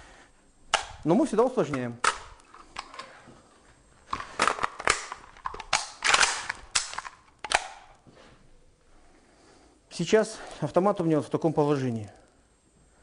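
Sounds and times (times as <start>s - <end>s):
rifle parts clacking and rattling: 1.6s - 7.9s
rifle handling: 1.6s - 8.0s.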